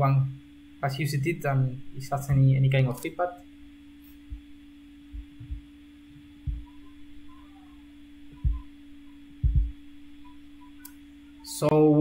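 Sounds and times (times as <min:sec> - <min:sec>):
low electrical hum: 0:00.0 - 0:12.0
soft low thumps: 0:03.6 - 0:10.9.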